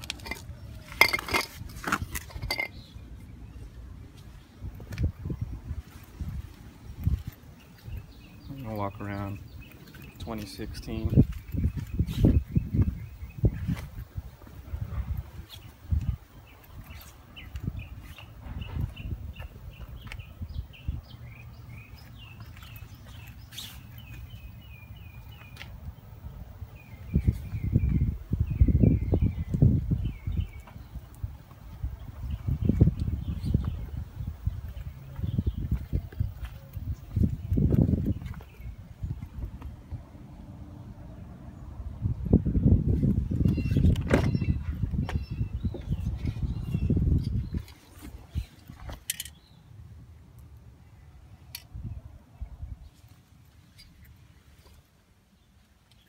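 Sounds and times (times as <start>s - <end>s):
birds chirping: 0.0s - 49.8s
low microphone rumbles: 25.9s - 40.2s.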